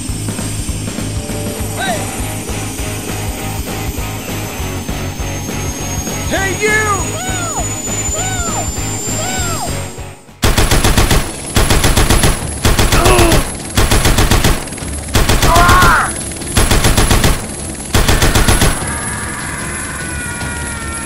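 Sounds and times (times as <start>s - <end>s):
warbling tone: 0.9s - 18.9s
squealing cries: 5.8s - 9.9s, 15.4s - 16.2s, 18.3s - 21.0s
machine-gun fire: 10.4s - 19.0s.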